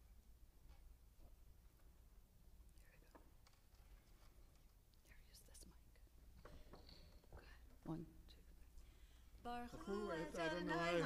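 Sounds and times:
faint whispered speech: 5.0 - 6.0.

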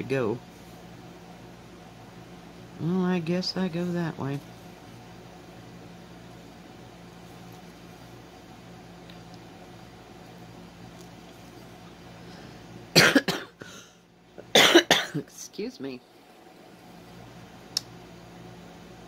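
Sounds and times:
low background hum: 0.0 - 19.0
woman coughing: 12.9 - 15.3.

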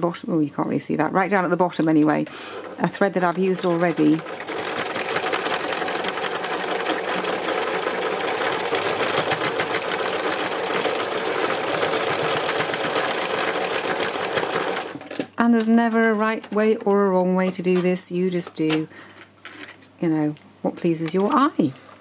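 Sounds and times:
sewing machine stitching: 1.2 - 15.3.

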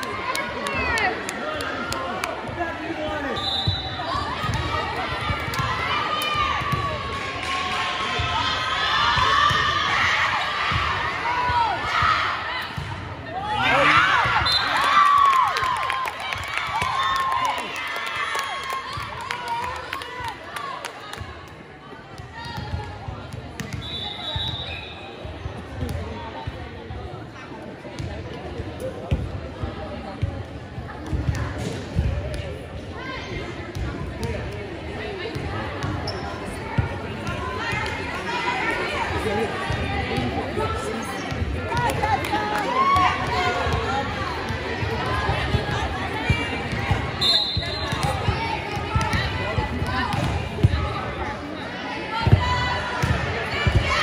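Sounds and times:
voices of players and spectators: 0.0 - 54.0
high referee's whistle: 3.3 - 4.0, 23.8 - 25.2, 47.2 - 48.1.

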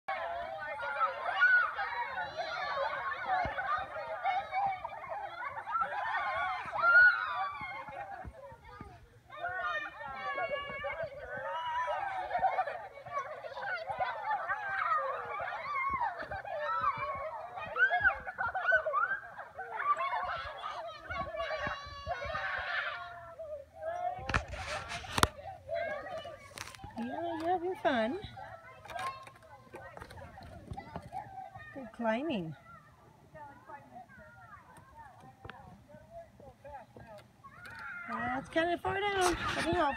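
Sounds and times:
children shouting and squealing: 0.1 - 39.9.

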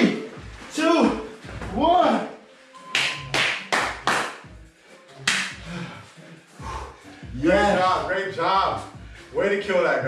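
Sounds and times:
background music: 0.0 - 10.0
hand claps: 2.8 - 4.6, 5.2 - 5.6.

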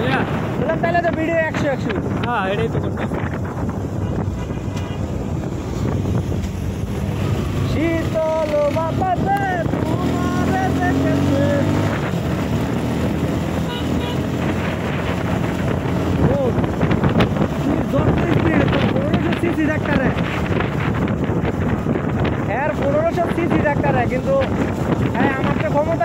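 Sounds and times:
motorcycle engine hum: 0.0 - 26.0
wind rushing over microphone: 0.0 - 26.0.

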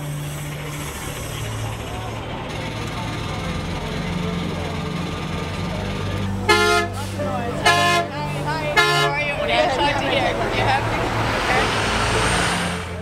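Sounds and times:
bus engine idling: 0.0 - 13.0
bus horn blasts: 6.3 - 11.2.

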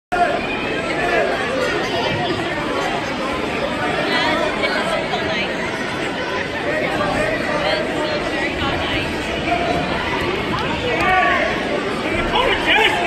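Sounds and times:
crowd chatter: 0.1 - 13.0.

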